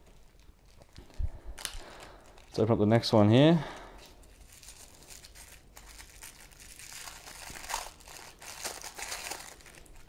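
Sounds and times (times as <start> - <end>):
plastic bag crinkling: 0.0 - 2.6, 4.1 - 10.0.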